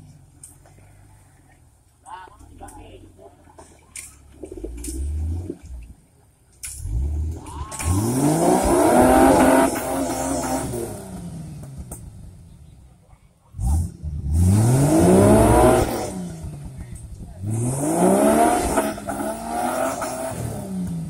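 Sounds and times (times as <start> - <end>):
buggy engine revving hard: 6.8 - 12.0, 13.6 - 21.0.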